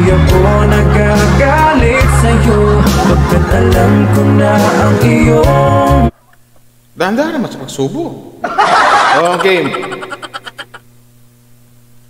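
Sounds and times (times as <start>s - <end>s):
man's croaky chuckle: 8.4s - 10.9s.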